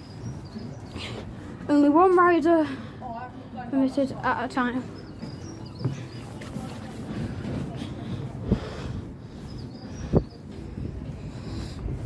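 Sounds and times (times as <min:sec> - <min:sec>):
footsteps on wooden planks: 0:04.6 - 0:12.0.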